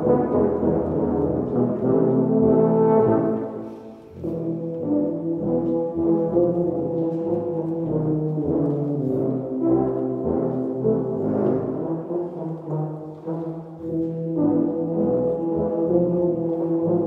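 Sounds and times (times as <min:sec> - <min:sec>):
tubas and euphoniums playing chords: 0:00.0 - 0:17.0.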